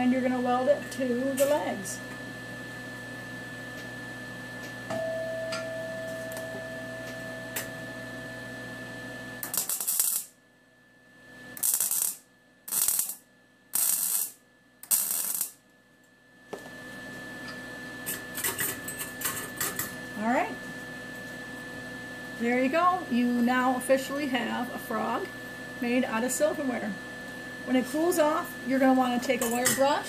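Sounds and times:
steady shop hum: 0.0s - 30.0s
welder arc crackling: 9.4s - 10.4s, 11.5s - 15.7s.

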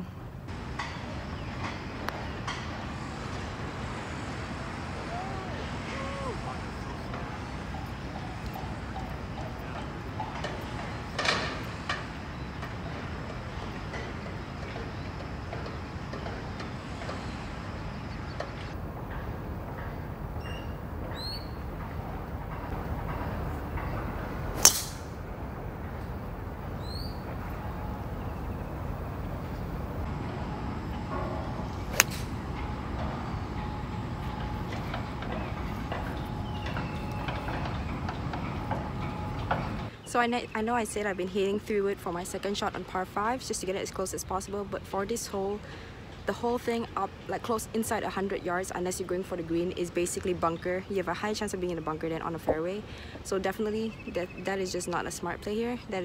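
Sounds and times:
rising bird chirps: 20.4s - 21.7s, 26.8s - 29.8s
smaller crack: 24.6s - 25.1s, 32.0s - 32.3s
golf club striking ball: 24.6s - 25.2s, 31.9s - 32.4s.

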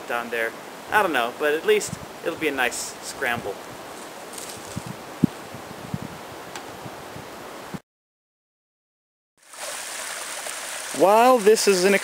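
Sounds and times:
wind through trees: 0.0s - 7.8s
stream splashing over rocks: 9.4s - 12.0s.

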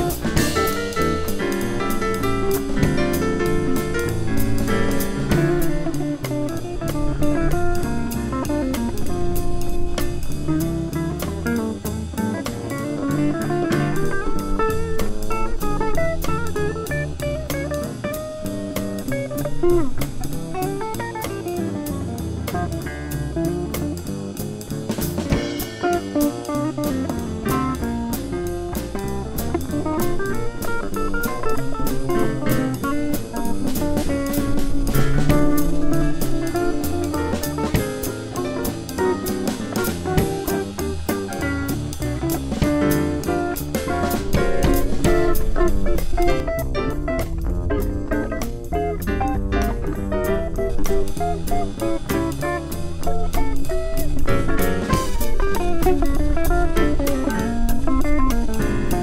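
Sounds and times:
electric guitar lead: 0.0s - 24.2s, 25.3s - 59.0s
drum kit with cymbals: 0.0s - 59.0s
upright bass: 0.0s - 59.0s.

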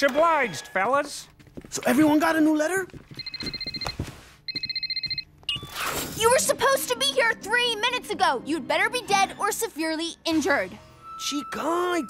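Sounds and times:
mobile phone ringing: 3.1s - 5.8s.

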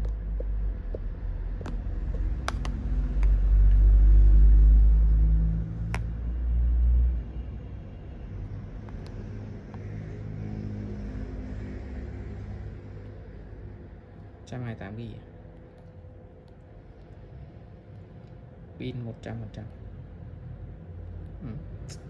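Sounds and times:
vehicle engine rumble: 0.0s - 14.5s
low hum: 0.0s - 22.0s.

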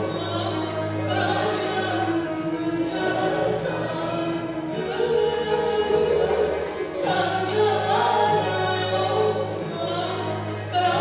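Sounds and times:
folk instrument ensemble: 0.0s - 11.0s
person singing: 0.0s - 11.0s
string orchestra playing: 0.0s - 11.0s.

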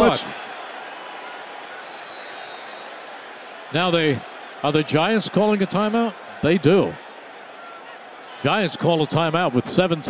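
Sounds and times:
radio football commentary: 0.0s - 0.5s, 1.3s - 10.0s
stadium crowd noise: 0.0s - 10.0s.

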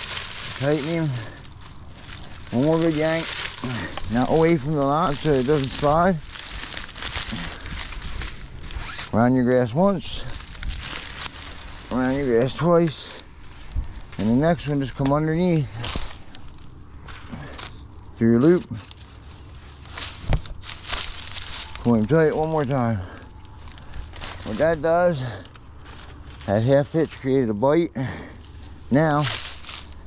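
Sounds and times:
dry grass stalks rustling: 0.0s - 30.0s.

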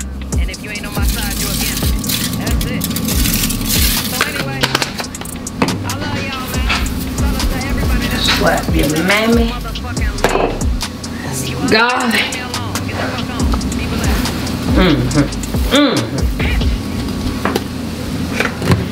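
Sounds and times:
voice in music: 0.0s - 17.2s
music with deep bassline: 0.0s - 17.4s.

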